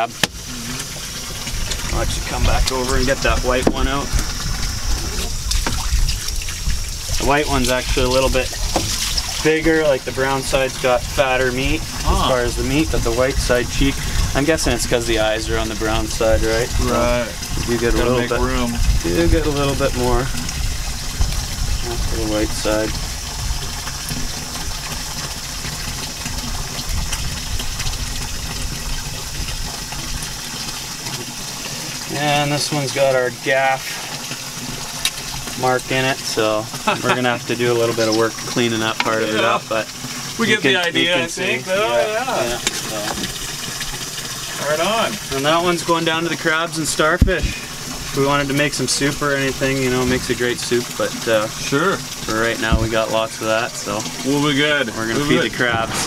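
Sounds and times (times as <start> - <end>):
constant low rumble: 0.0 - 39.1
water running from a hose: 0.0 - 56.0
low rumble: 55.5 - 56.0.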